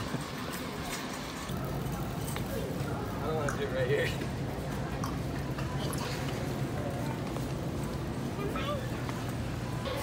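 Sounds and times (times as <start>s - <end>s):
faint indistinct voices: 0.0s - 10.0s
store background hum: 0.0s - 10.0s.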